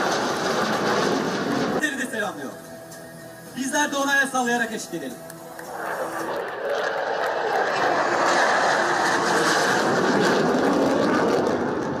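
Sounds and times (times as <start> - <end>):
fighter jet flying past: 0.0 - 1.8, 5.6 - 12.0.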